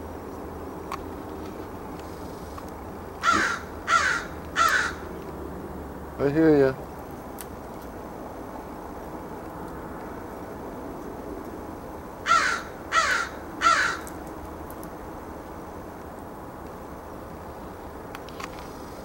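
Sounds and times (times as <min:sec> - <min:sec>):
faint background hum: 0:00.0 - 0:19.0
crow cawing: 0:03.2 - 0:05.1, 0:12.2 - 0:14.1.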